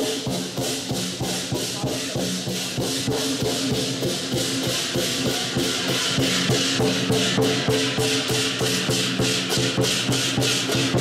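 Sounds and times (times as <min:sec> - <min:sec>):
crashing hand cymbals: 0:00.0 - 0:11.0
drum beating a steady rhythm: 0:00.0 - 0:11.0.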